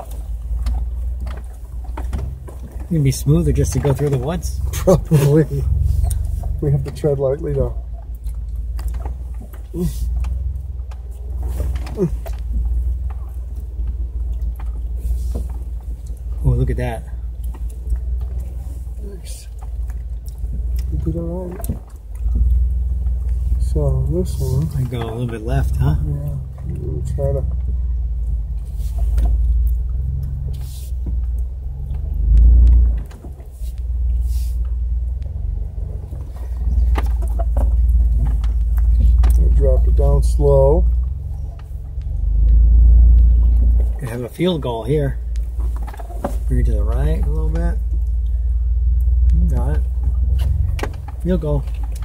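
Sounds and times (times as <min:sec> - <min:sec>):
body and suspension rattles: 0:00.0 - 0:52.0
engine low rumble: 0:00.0 - 0:52.0
vehicle jolting over bumps: 0:00.0 - 0:52.0.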